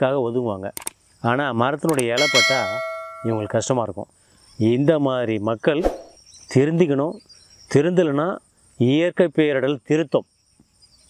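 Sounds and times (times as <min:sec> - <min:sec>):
man talking: 0:00.0 - 0:00.7, 0:01.3 - 0:05.9
crickets chirping: 0:00.0 - 0:11.0
sharp click: 0:01.9 - 0:02.2.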